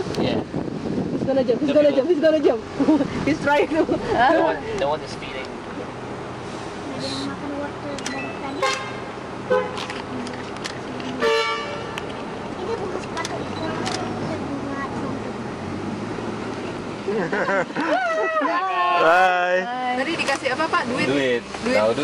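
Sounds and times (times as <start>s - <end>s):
vehicle noise: 0.0s - 22.0s
background chatter: 1.2s - 11.2s, 12.0s - 15.8s
car horn toot: 8.4s - 9.8s, 11.2s - 12.0s.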